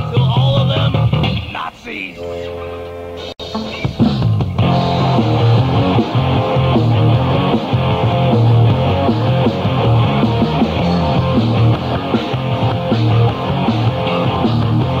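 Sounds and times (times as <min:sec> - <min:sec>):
thrashcore band playing: 0:00.0 - 0:15.0
electric guitar: 0:02.4 - 0:15.0.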